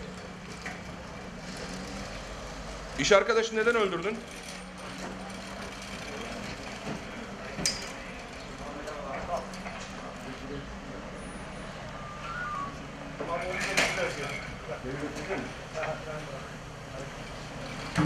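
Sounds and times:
faint voices: 4.8s - 13.6s.

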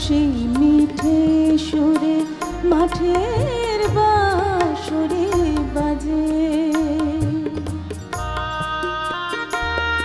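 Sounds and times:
woman singing: 0.0s - 8.2s
harmonium: 0.0s - 10.0s.

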